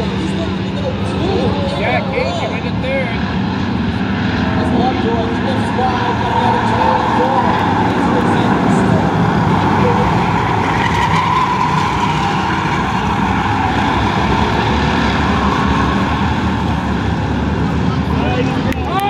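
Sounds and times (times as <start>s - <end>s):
stock car engines roaring: 0.0s - 19.0s.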